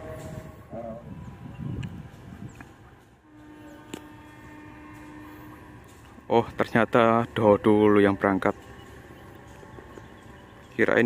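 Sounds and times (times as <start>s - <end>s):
distant locomotive horn: 0.0s - 2.2s, 3.2s - 11.0s.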